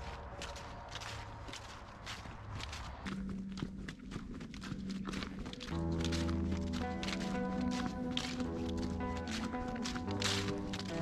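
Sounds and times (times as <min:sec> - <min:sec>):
footsteps crunching through leaves: 0:00.0 - 0:11.0
soft background music: 0:00.0 - 0:11.0.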